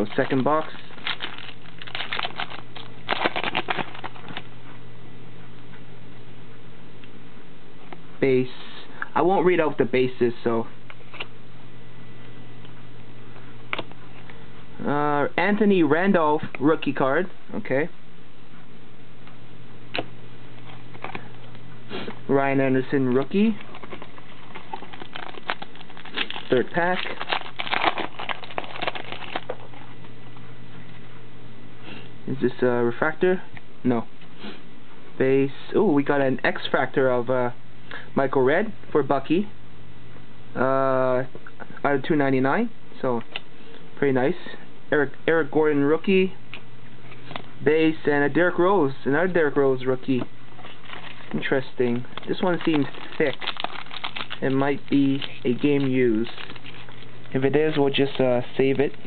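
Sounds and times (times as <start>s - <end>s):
foil wrapper tearing and crinkling: 0.0s - 4.4s, 23.7s - 29.6s, 50.6s - 51.5s, 52.1s - 58.2s
steady low hum: 0.0s - 59.0s.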